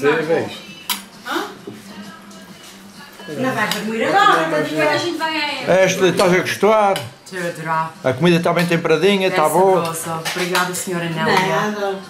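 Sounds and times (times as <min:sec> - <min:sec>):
people eating: 0:00.0 - 0:12.0.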